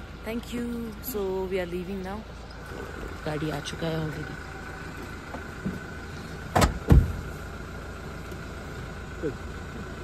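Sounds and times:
car engine idling: 0.0 - 10.0
car doors shutting: 5.0 - 7.4.

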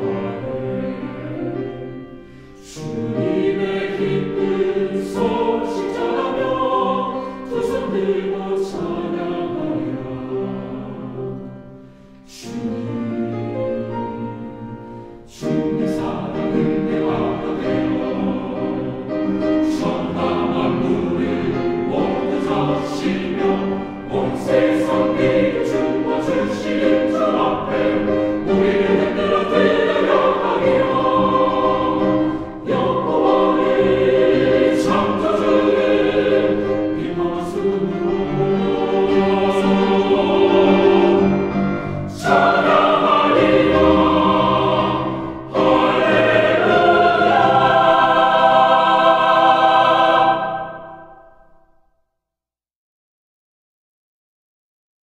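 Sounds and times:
choir singing in harmony: 0.0 - 51.8.

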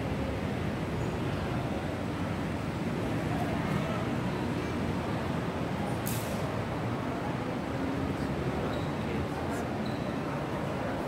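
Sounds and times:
city traffic rumble: 0.0 - 11.0
short hiss: 6.0 - 6.5.

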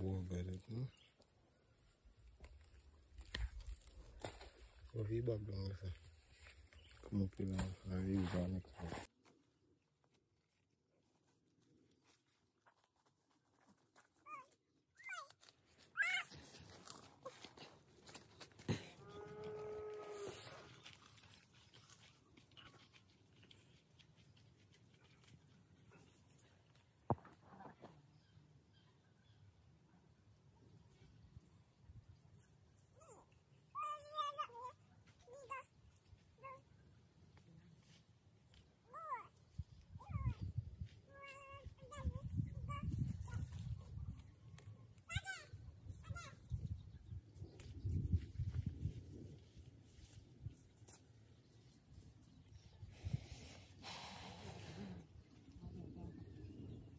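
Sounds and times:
long steady animal call: 19.0 - 23.7.

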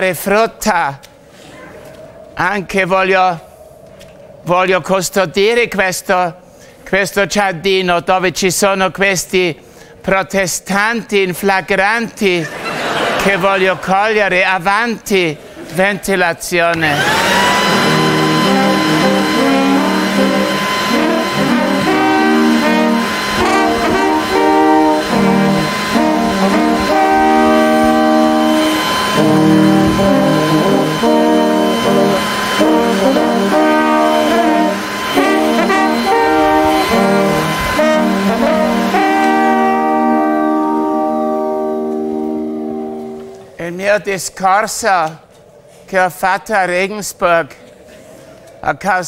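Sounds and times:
leaf blower whine: 16.7 - 43.5
brass band playing: 16.9 - 43.4.

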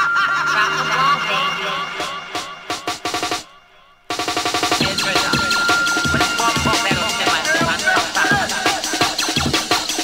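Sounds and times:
jungle drum beat: 4.1 - 10.0.

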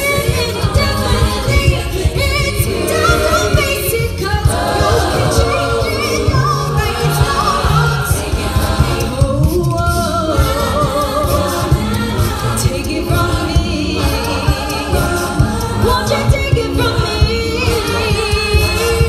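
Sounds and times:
a cappella group singing: 0.0 - 19.0
vocal percussion beat: 0.0 - 19.0.

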